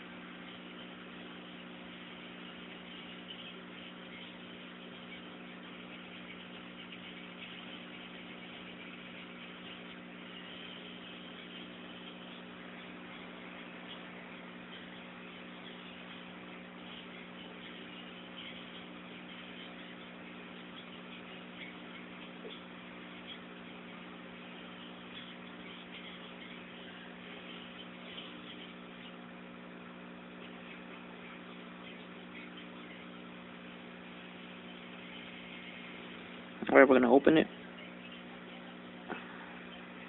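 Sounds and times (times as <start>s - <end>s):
low tonal hum: 0.0s - 40.0s.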